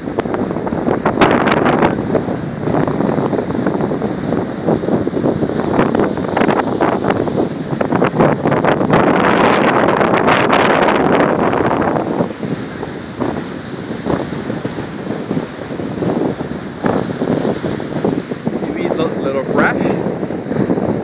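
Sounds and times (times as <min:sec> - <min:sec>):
surf breaking on a beach: 0:00.0 - 0:21.0
wind buffeting microphone: 0:00.0 - 0:21.0.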